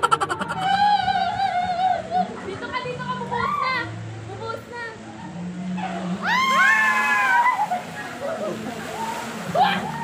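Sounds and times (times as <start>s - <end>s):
background music low notes: 0.0s - 10.0s.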